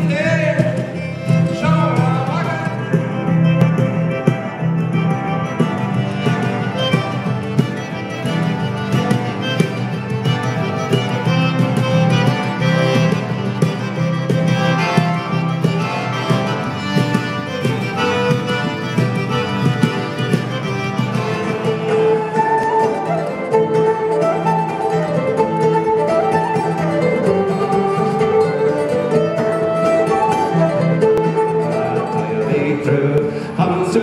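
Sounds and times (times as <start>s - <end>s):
fiddle melody: 0.0s - 34.0s
strummed acoustic guitar: 0.0s - 34.0s.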